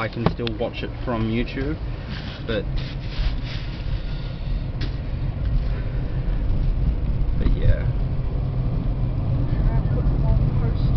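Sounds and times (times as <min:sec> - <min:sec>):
engine and tyre rumble: 0:00.0 - 0:10.9.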